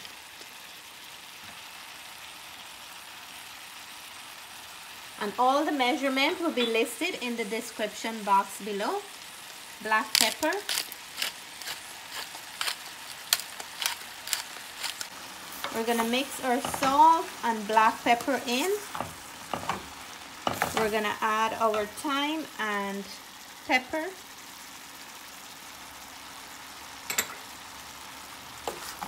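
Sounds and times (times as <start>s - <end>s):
squash sizzling in oil: 0.0s - 29.0s
sharp crackles: 10.0s - 15.1s.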